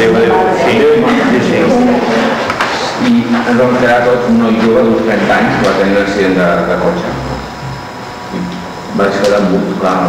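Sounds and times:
faint high whine: 0:00.0 - 0:10.0.

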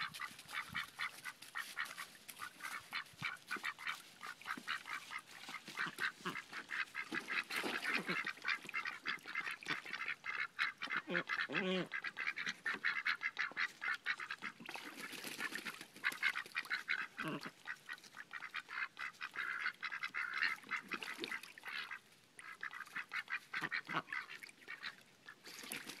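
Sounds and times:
ducks quacking: 0:00.0 - 0:25.8.

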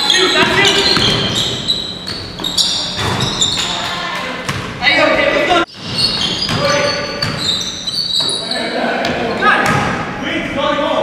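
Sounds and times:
sneakers squeaking: 0:00.0 - 0:10.2
basketball bouncing on wooden floor: 0:00.4 - 0:04.8, 0:05.7 - 0:08.3.

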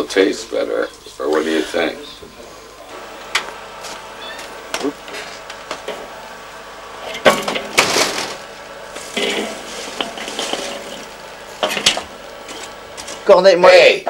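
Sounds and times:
fire crackling and snapping: 0:03.0 - 0:13.4
burning fuel rushing and clattering: 0:09.0 - 0:12.8.

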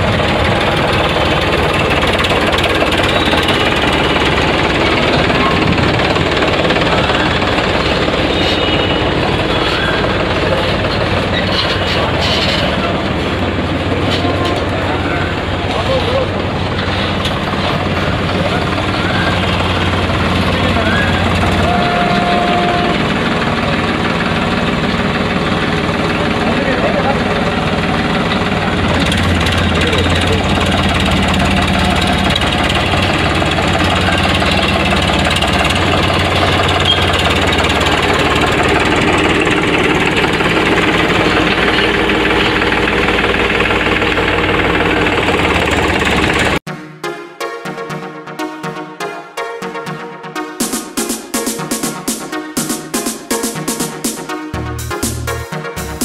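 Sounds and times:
crowd chatter: 0:00.0 - 0:36.4
vehicle engine idling: 0:00.0 - 0:46.6.

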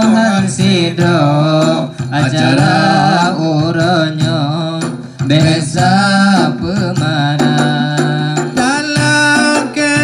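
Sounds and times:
hand-played frame drum: 0:00.0 - 0:10.0
male voices chanting: 0:00.0 - 0:10.0.

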